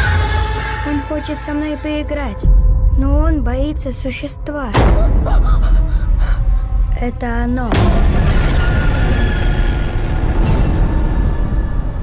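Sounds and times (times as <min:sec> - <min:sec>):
deep low rumble: 0:01.7 - 0:12.0.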